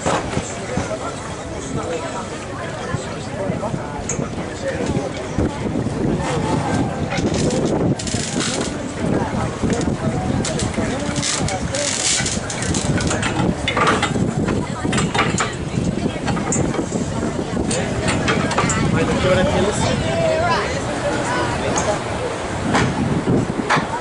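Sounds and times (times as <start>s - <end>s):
boat engine under way: 0.0s - 24.0s
people talking indistinctly: 0.0s - 24.0s.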